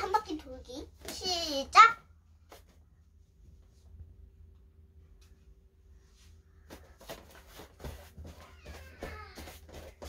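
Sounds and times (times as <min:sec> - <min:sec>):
child's footfalls and shuffling: 0:06.0 - 0:10.0.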